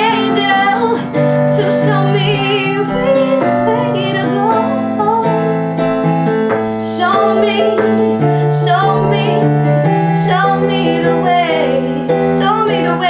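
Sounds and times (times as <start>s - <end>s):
woman singing: 0.0s - 5.6s, 6.8s - 13.0s
held keyboard chords: 0.0s - 13.0s.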